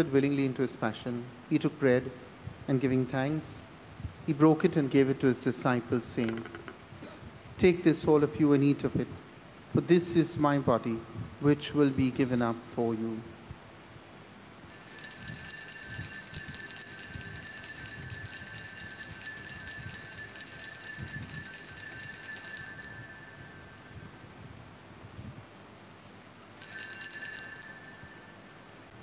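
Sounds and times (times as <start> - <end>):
small bells jingling: 14.7 - 23.8, 26.6 - 28.4.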